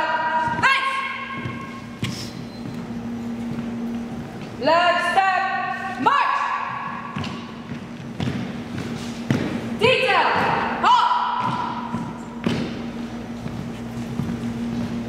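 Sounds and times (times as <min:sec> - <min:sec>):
shouted drill command: 0:00.1 - 0:01.4, 0:04.7 - 0:06.7, 0:09.8 - 0:11.7.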